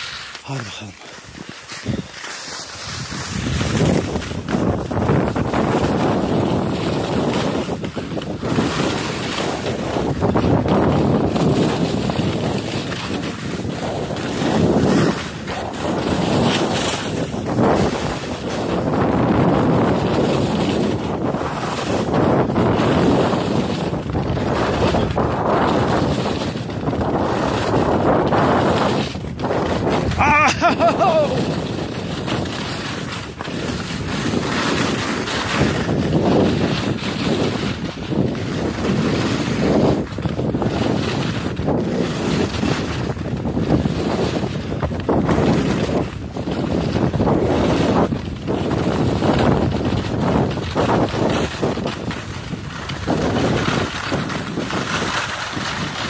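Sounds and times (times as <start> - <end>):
skis scraping on hard snow: 0.0 - 56.0
wind rushing over microphone: 0.0 - 56.0.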